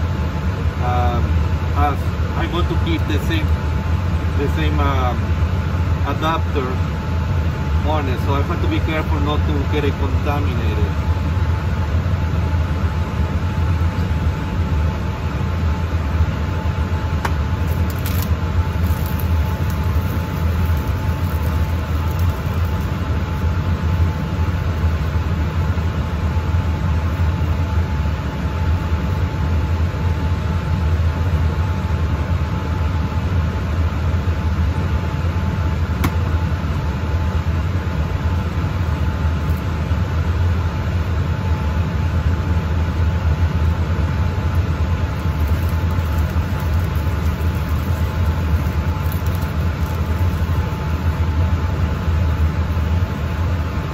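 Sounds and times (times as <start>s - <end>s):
blower humming with faint whine: 0.0s - 53.9s.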